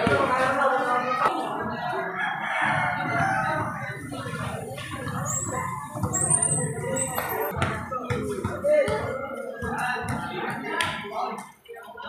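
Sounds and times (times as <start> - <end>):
crowd noise: 0.0 - 12.0
rooster crowing: 2.2 - 3.6.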